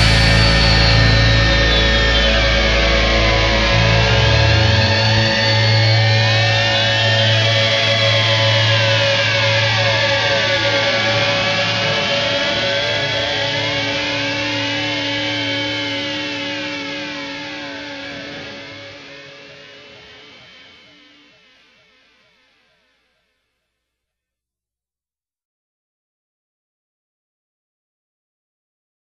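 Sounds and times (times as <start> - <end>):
low bass note: 0.0 - 18.2
held rock chord: 0.0 - 22.6
swooping guitar effects: 0.0 - 23.3.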